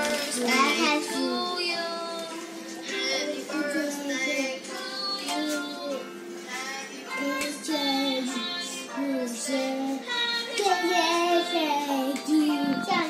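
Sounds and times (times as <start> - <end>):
children singing: 0.0 - 13.0
music: 0.0 - 13.0.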